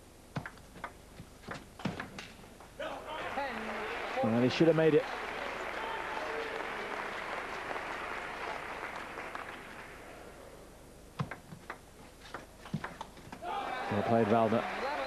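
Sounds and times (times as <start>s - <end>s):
table tennis ball clicks: 0.3s - 2.4s, 11.2s - 13.1s
crowd applauding: 2.8s - 10.5s, 13.4s - 15.0s.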